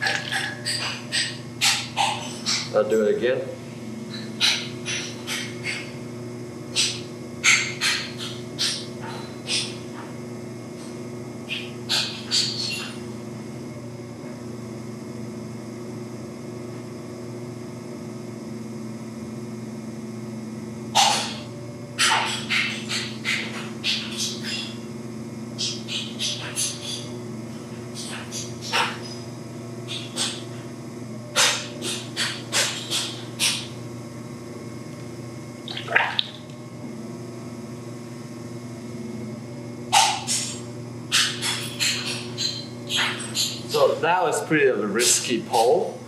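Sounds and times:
pottery wheel motor humming: 0.0 - 46.0.

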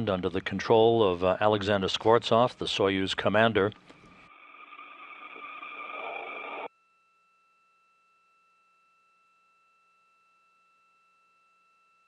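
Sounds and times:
faint steady tones: 3.5 - 12.0
radio channel hiss: 4.2 - 6.7.

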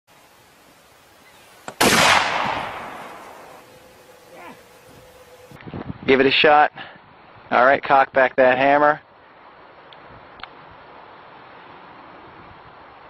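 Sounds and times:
rifle shot: 1.7 - 3.6.

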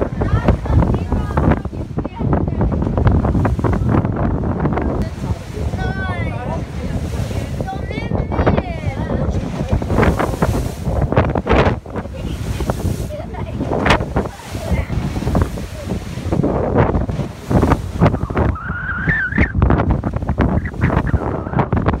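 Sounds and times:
choppy sea water rushing: 0.0 - 22.0
wind buffeting microphone: 0.0 - 22.0.

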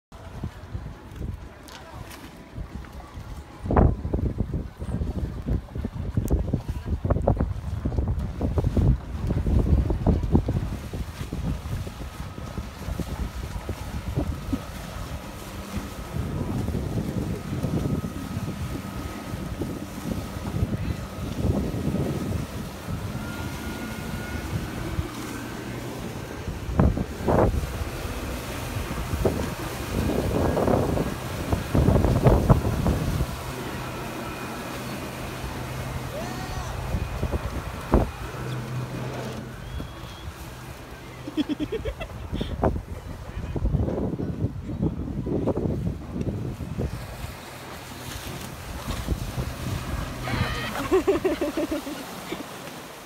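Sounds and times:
boat engine drone: 0.1 - 53.0
rushing water: 0.1 - 53.0
wind buffeting microphone: 0.2 - 51.8.

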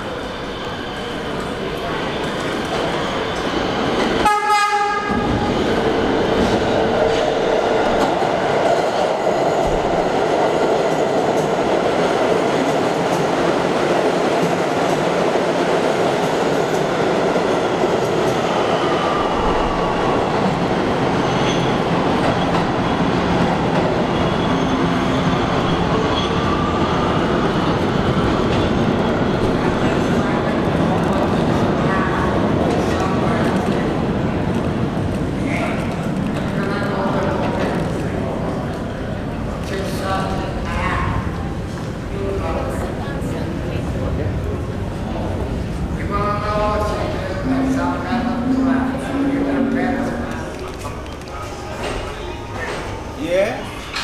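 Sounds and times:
train horn blast: 4.2 - 5.3.

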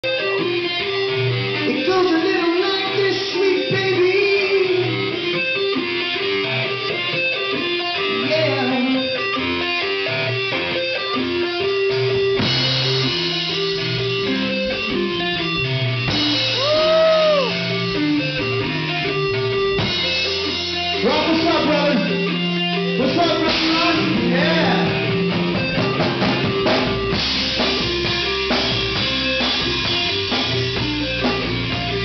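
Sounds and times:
bass guitar: 0.0 - 32.0
drum kit: 0.0 - 32.0
electric guitar: 0.0 - 32.0.

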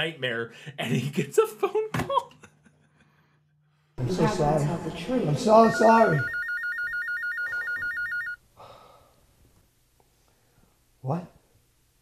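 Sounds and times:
electronic telephone ring: 5.5 - 8.4.

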